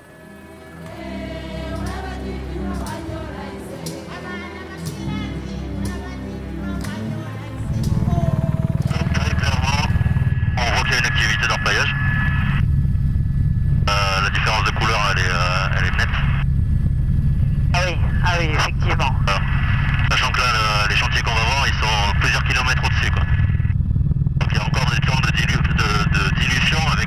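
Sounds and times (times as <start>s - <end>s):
helicopter rotor and engine drone: 0.0s - 27.0s
people talking: 4.4s - 10.0s, 10.6s - 12.6s, 13.9s - 16.4s, 17.7s - 23.4s, 24.4s - 27.0s.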